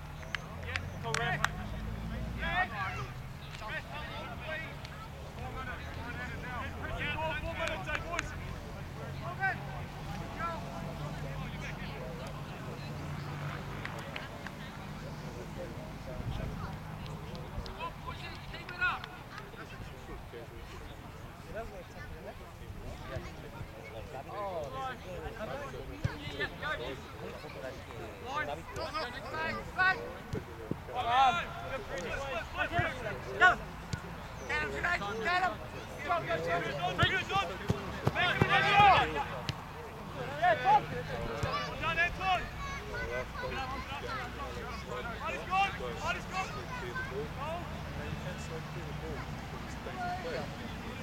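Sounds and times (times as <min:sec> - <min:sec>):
players shouting: 0:00.6 - 0:12.4, 0:28.2 - 0:51.0.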